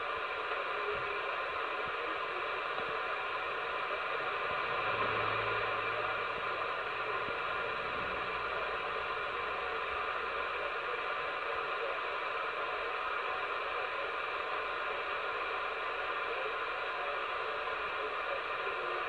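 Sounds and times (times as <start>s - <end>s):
radio static hiss: 0.0s - 19.0s.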